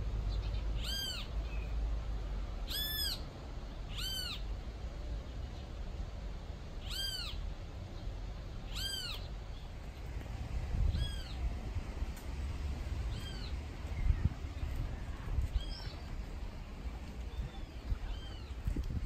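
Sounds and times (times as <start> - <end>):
animal mewing call: 0.8 - 1.3, 2.7 - 3.2, 3.9 - 4.4, 6.8 - 7.4, 8.7 - 9.3.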